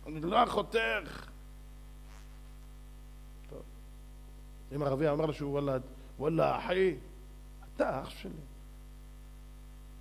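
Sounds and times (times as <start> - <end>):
man speaking: 0.0 - 1.3
electrical mains hum: 0.0 - 10.0.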